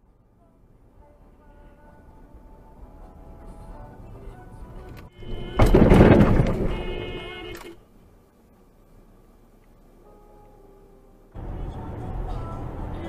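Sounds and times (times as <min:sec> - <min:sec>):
crunching scraping metal: 0:04.8 - 0:07.8
loud car crash impact: 0:05.2 - 0:07.6.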